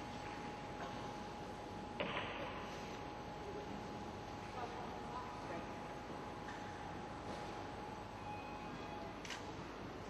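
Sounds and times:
faint constant tone: 0.0 - 10.0.

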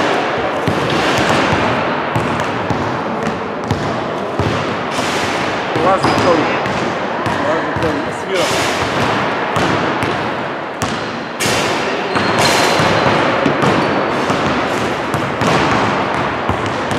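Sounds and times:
players' voices: 0.0 - 14.7
basketballs bouncing on wooden floor: 0.0 - 16.9.

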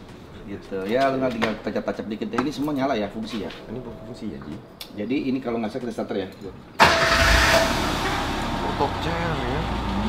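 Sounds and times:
car engine starting and idling: 6.8 - 10.0.

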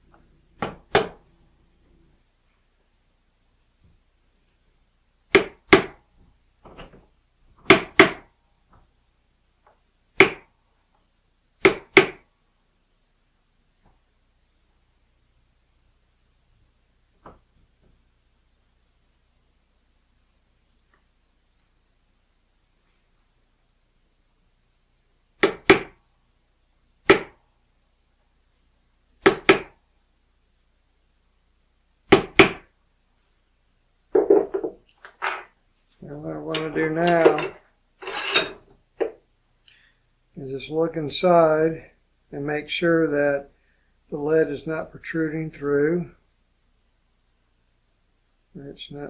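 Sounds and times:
hammer tapping metal punch: 36.5 - 38.6.

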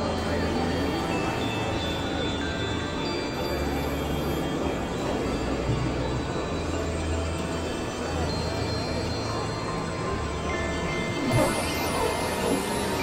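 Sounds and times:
noisy synthesizer drone: 0.0 - 13.0
thin steady high tones: 0.0 - 13.0.

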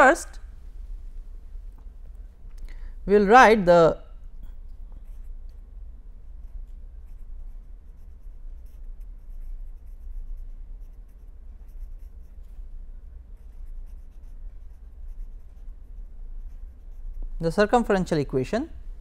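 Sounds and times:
steady low hum: 0.0 - 19.0
pen scratching on paper: 6.4 - 12.4, 13.4 - 17.7.

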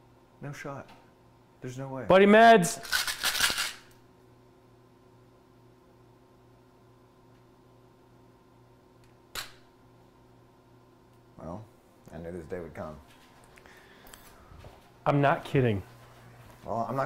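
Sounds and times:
faint electrical hum: 0.0 - 17.0.

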